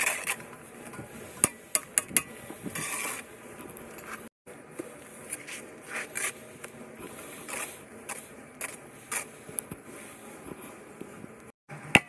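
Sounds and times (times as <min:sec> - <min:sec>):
trowel scraping mortar on block: 0:00.0 - 0:04.3, 0:05.2 - 0:10.8.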